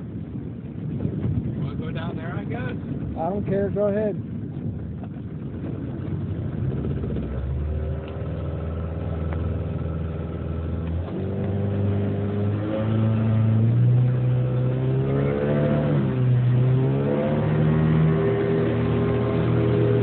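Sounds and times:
outboard motor speeding up: 0:00.0 - 0:20.0.

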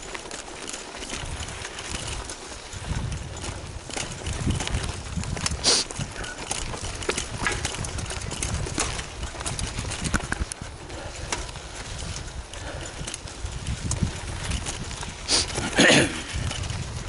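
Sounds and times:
bike clicks and rattles: 0:00.0 - 0:17.0
bike tyres crunching over stones: 0:00.0 - 0:17.0.

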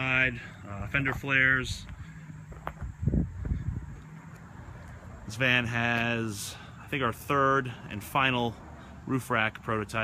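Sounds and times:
soft footsteps on pavement: 0:00.0 - 0:10.0.

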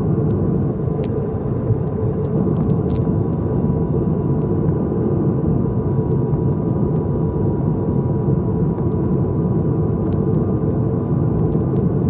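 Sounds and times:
turboprop cabin drone: 0:00.0 - 0:12.0.

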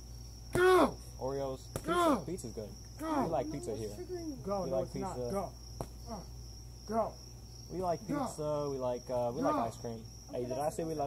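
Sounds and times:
crickets trilling: 0:00.0 - 0:11.0
sharp smack: 0:00.5 - 0:00.8, 0:01.7 - 0:02.0, 0:05.8 - 0:06.0
person speaking: 0:03.0 - 0:05.5.

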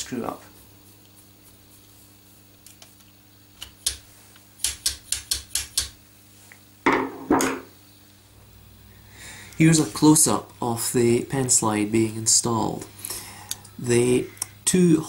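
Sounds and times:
faint steady hum: 0:00.0 - 0:15.0.

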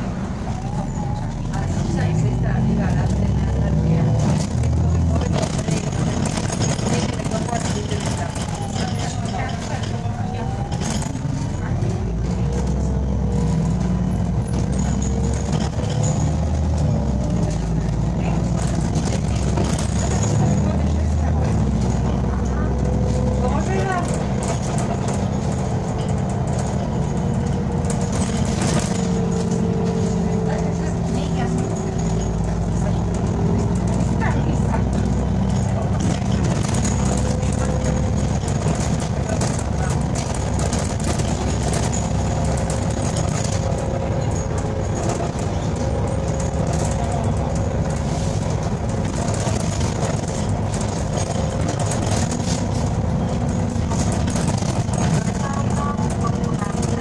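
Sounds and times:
bus engine running: 0:00.0 - 0:57.0
road noise: 0:00.0 - 0:57.0.

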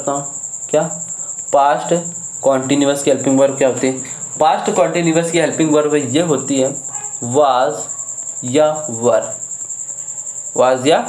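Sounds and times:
man talking: 0:00.0 - 0:01.0, 0:01.6 - 0:09.4, 0:10.6 - 0:11.0.

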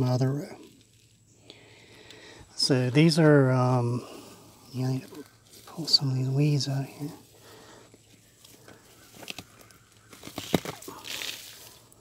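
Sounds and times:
leaves rustling against camera: 0:00.0 - 0:12.0.

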